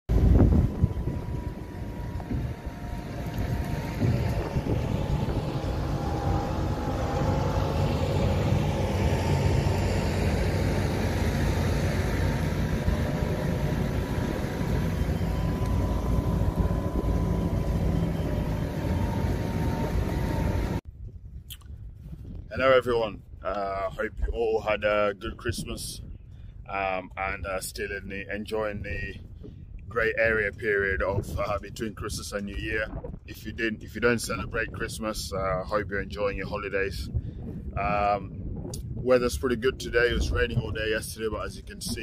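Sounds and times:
wind on microphone: 0:00.1 - 0:42.0.

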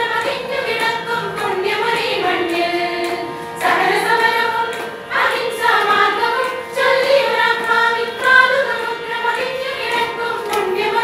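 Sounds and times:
women's choir singing: 0:00.0 - 0:11.0.

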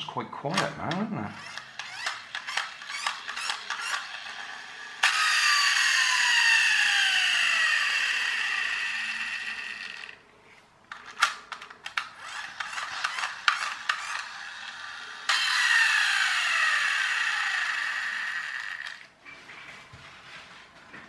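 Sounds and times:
toy clicking and rattling: 0:01.4 - 0:06.2, 0:10.9 - 0:15.7, 0:16.4 - 0:19.0
toy car motor whine: 0:01.4 - 0:10.2, 0:12.1 - 0:19.1.

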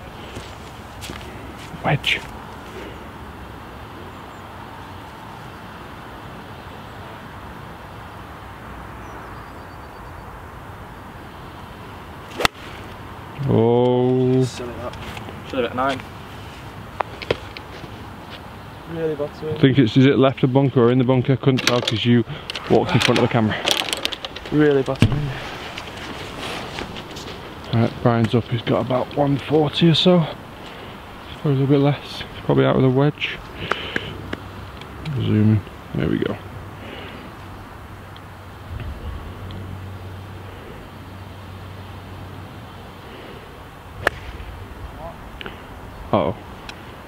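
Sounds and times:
low background hiss: 0:00.0 - 0:47.0
club striking ball crack: 0:12.3 - 0:12.8, 0:44.0 - 0:44.6
golf club swish: 0:12.3 - 0:13.0, 0:44.0 - 0:44.5.

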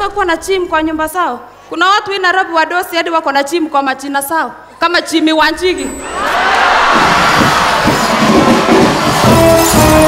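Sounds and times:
audience cheering and clapping: 0:06.0 - 0:10.0.

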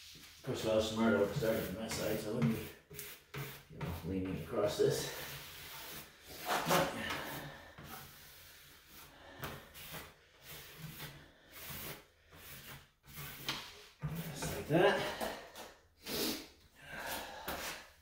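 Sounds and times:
trowel scraping adhesive on plastic: 0:00.8 - 0:14.8.

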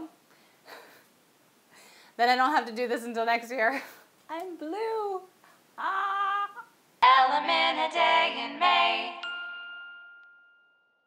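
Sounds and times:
bright bell ding: 0:09.2 - 0:11.0.

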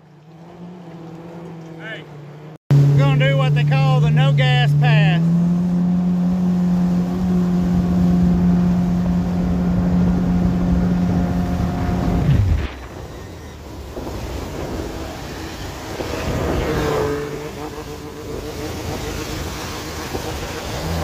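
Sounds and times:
outboard jet motor: 0:00.0 - 0:21.0
second boat outboard motor: 0:00.0 - 0:21.0
spray and wake rushing: 0:04.1 - 0:21.0.

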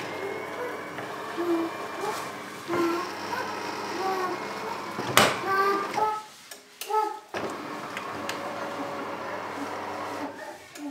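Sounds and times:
child's high-pitched voice: 0:00.2 - 0:07.3, 0:10.2 - 0:10.9.

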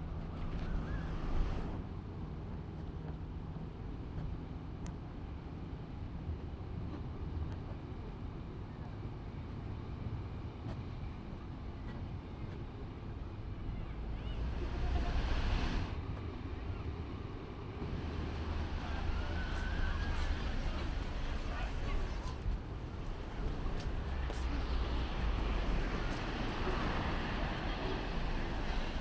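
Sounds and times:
wind rumbling on microphone: 0:13.4 - 0:29.0
passersby talking: 0:13.6 - 0:16.0, 0:17.8 - 0:29.0
distant surf: 0:14.3 - 0:16.0, 0:17.6 - 0:29.0.

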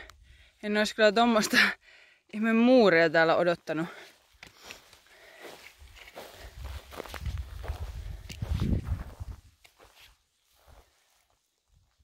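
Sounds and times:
footsteps on stony ground: 0:03.4 - 0:12.0.

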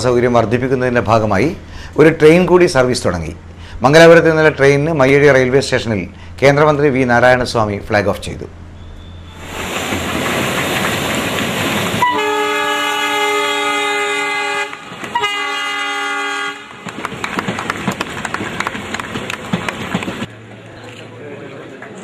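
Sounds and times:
train wheels clattering over rail joints: 0:09.5 - 0:12.0, 0:16.7 - 0:20.3
train horn blasts: 0:12.0 - 0:16.8.

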